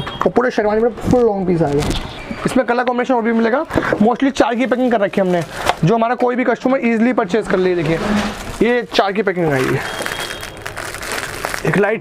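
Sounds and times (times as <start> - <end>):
man talking: 0.2 - 9.9, 11.6 - 12.0
plastic packets rustling: 3.4 - 6.3, 7.3 - 12.0.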